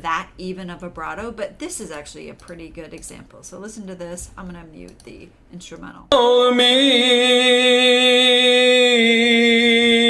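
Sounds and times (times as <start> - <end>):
man singing long note: 6.1 - 10.0.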